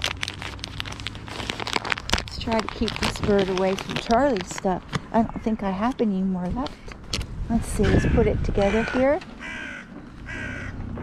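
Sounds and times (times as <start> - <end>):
plastic snack bag crinkling: 0.0 - 5.0.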